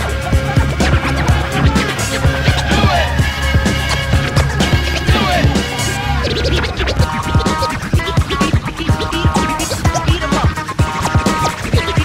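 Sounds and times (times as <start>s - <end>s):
hip-hop drum beat: 0.0s - 12.0s
turntable scratching: 0.0s - 12.0s.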